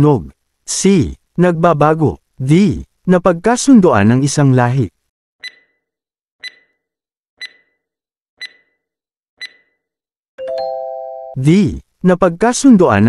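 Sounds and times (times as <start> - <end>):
clock-like ticks: 5.4 - 5.8, 6.4 - 6.8, 7.4 - 7.8, 8.4 - 8.8, 9.4 - 9.8
ringing chime: 10.4 - 11.4.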